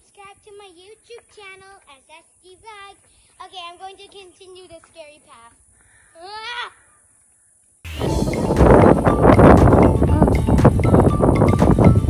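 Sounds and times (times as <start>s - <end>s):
child singing quietly: 10.1s - 10.5s.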